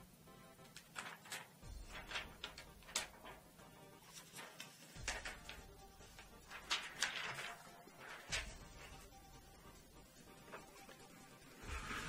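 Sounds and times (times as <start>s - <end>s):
faint background music: 0.0s - 12.0s
plastic film peeling crackles: 0.7s - 3.4s, 4.1s - 8.7s.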